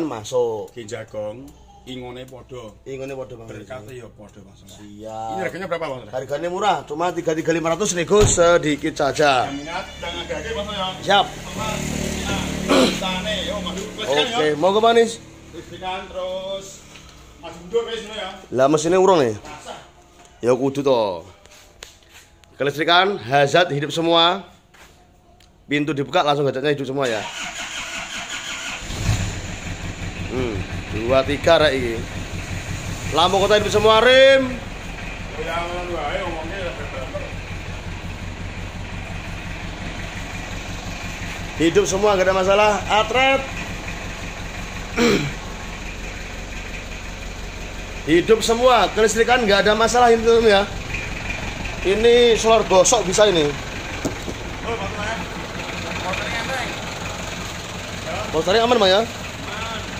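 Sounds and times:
diesel engine starting and idling: 0.0s - 21.1s, 25.6s - 59.9s.

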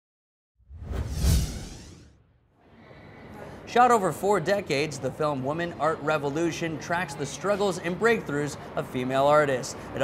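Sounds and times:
whoosh with deep rumble: 0.6s - 2.4s.

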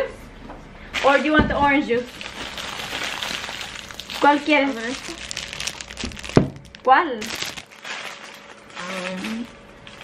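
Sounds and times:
plastic wrapper crinkling: 2.0s - 10.0s.

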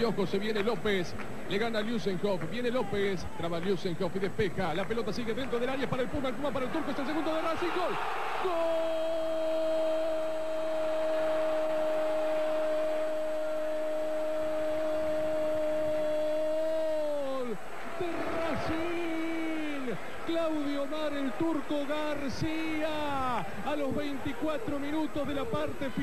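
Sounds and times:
excited shouting: 6.9s - 26.0s.

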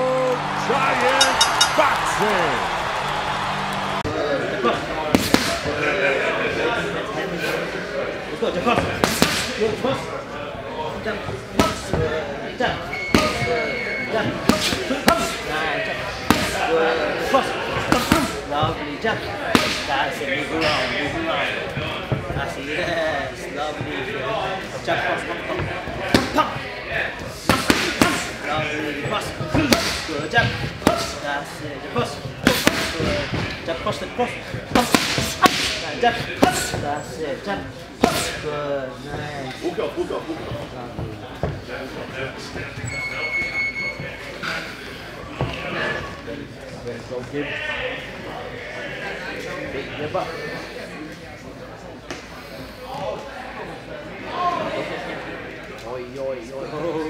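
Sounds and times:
voices in room: 0.0s - 57.0s
boxing gloves smacking focus mitts: 9.0s - 9.5s, 34.7s - 35.8s.

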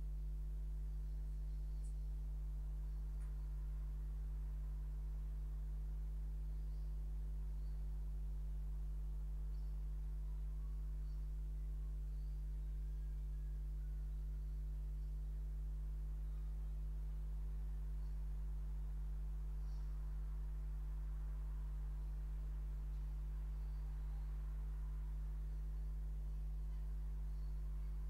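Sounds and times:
electrical mains hum: 0.0s - 28.0s.

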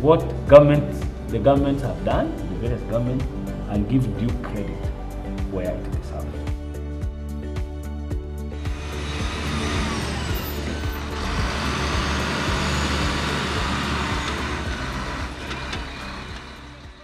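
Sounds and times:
background music: 0.0s - 17.0s
heavy vehicle engine: 8.6s - 17.0s.

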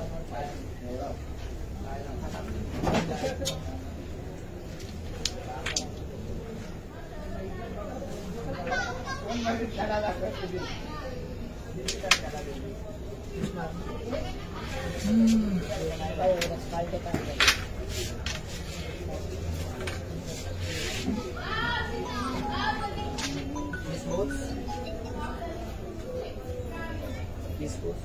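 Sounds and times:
people talking and calling: 0.0s - 28.0s
indistinct voices talking: 20.6s - 27.4s.

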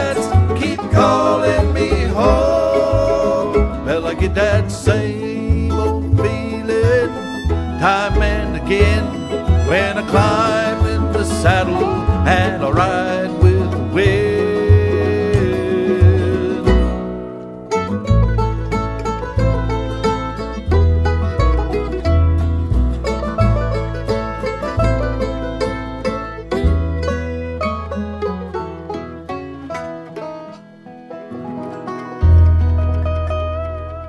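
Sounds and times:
bluegrass band playing: 0.0s - 34.0s
fast picked banjo: 0.0s - 34.0s
walking bass: 0.0s - 34.0s.

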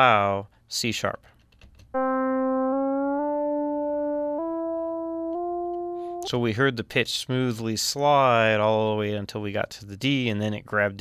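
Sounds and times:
synthesizer tone stepping upward: 2.0s - 6.4s.

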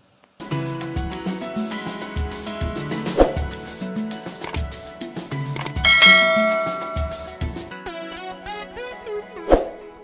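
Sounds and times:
bright notification bell ding: 5.6s - 7.5s
music with bass and percussion: 5.6s - 7.7s.

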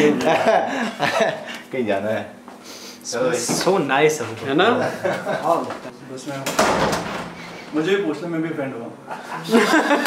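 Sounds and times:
men laughing loudly: 0.0s - 1.7s, 4.7s - 5.7s, 9.0s - 10.0s
men talking: 0.0s - 2.4s, 3.0s - 10.0s.

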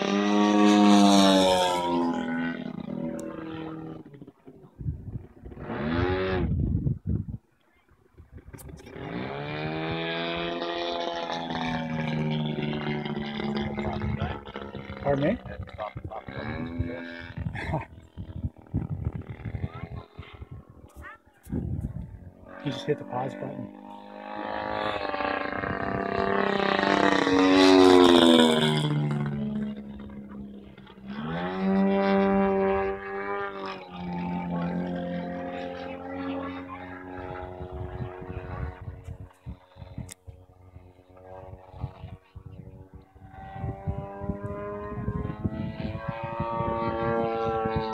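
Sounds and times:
model airplane engine droning: 0.0s - 47.9s.

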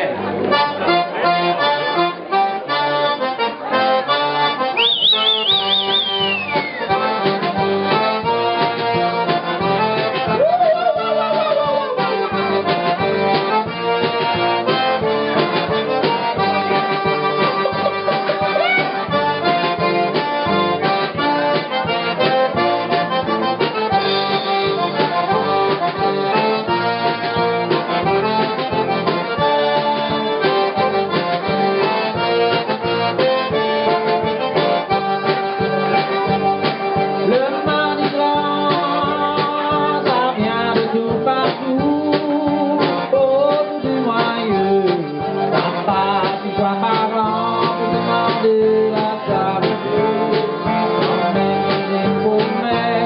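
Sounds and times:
band with accordion: 0.0s - 53.0s
fiddle playing: 0.2s - 39.3s
high warbling whistle: 4.8s - 6.9s
steady drum beat: 5.0s - 53.0s.

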